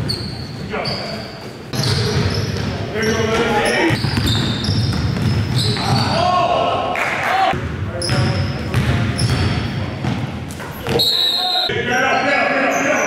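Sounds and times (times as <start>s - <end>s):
sneakers squeaking: 0.0s - 6.4s, 7.5s - 13.0s
players calling out: 1.8s - 8.4s
basketball bouncing on wooden floor: 3.4s - 6.1s, 7.6s - 11.0s.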